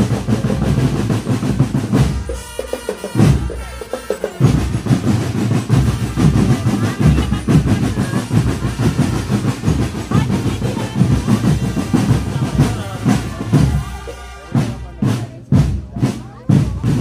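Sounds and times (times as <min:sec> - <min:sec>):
bass drum beats: 0:00.0 - 0:17.0
snare drum patterns: 0:00.0 - 0:17.0.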